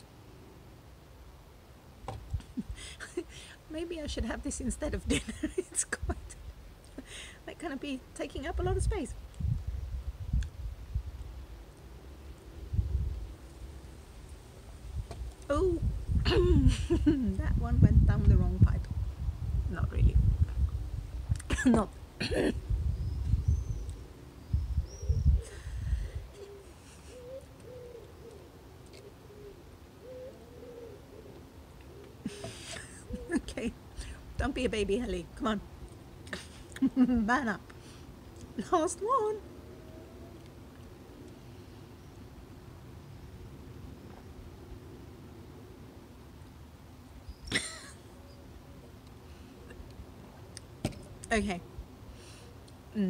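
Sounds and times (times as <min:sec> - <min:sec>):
faint background noise: 0:00.0 - 0:53.0
faint high bird chirps: 0:22.8 - 0:25.5
pigeon cooing: 0:25.0 - 0:33.5.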